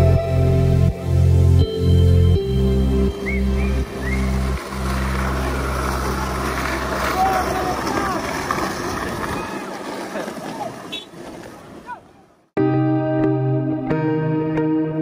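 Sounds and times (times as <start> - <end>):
background music: 0.0 - 7.0, 12.6 - 15.0
skateboard wheels rolling on asphalt: 2.7 - 12.5
voices calling out: 6.0 - 12.4.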